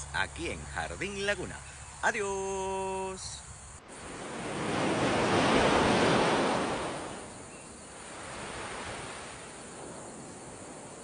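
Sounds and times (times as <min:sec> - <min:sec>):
wind gusting through foliage: 0:00.0 - 0:11.0.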